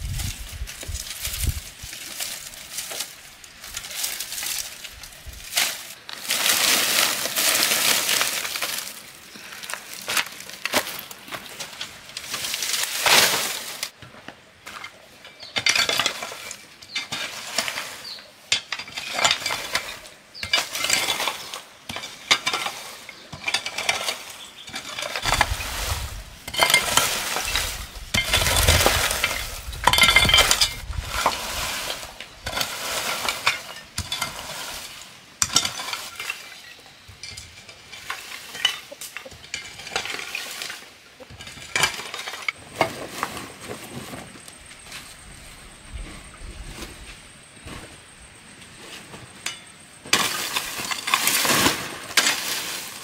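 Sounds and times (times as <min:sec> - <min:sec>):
metal hoe raking wood chips: 0:00.0 - 0:53.0.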